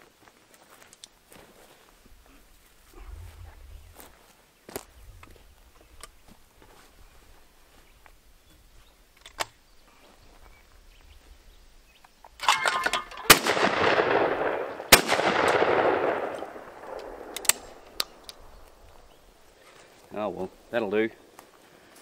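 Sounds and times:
shotgun shots with echo: 0:12.4 - 0:18.2
metallic click of gun opening: 0:16.2 - 0:18.4.

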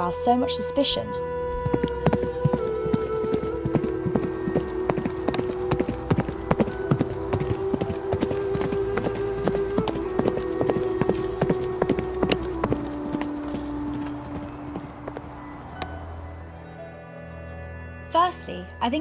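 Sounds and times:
music of long held notes: 0:00.0 - 0:19.0
horse hoofbeats: 0:01.5 - 0:16.5.

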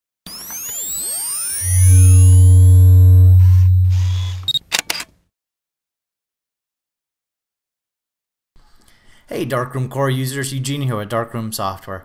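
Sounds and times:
swirling sweeping tones: 0:01.2 - 0:04.5
loud deep hum: 0:01.6 - 0:04.5
camera shutter clicks: 0:04.4 - 0:05.1.

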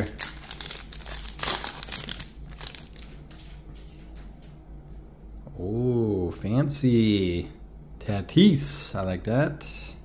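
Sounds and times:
foil wrapper crinkling: 0:00.0 - 0:04.2.

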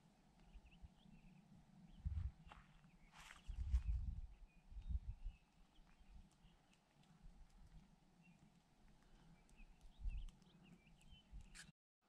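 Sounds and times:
low rumbles: 0:01.9 - 0:02.6.

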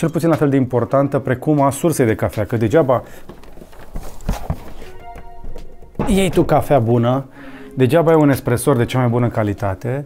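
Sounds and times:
dull knocks: 0:03.2 - 0:07.3.

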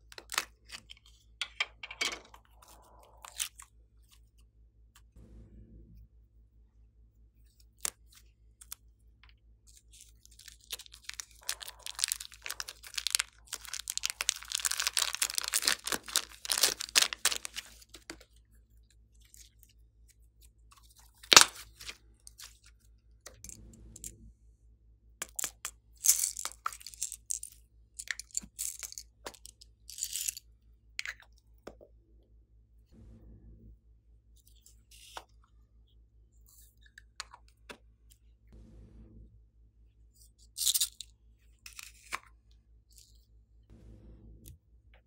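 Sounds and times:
slime skin crackling and tearing: 0:10.1 - 0:18.1
slime squelching: 0:10.2 - 0:18.2.

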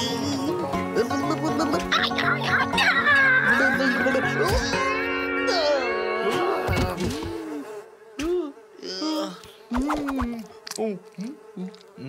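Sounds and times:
buzzing cartoon voice hums: 0:00.0 - 0:12.0.

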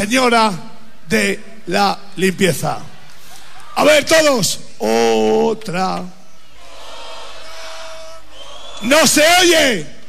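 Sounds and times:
man speaking loudly: 0:00.0 - 0:03.0, 0:03.8 - 0:06.2, 0:08.8 - 0:10.0
crowd noise in club: 0:02.2 - 0:04.0, 0:05.9 - 0:10.0.

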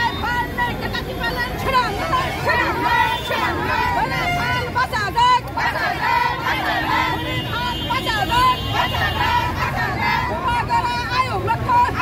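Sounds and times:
crowd of women shouting: 0:00.0 - 0:12.0
street traffic rumble: 0:00.0 - 0:12.0.

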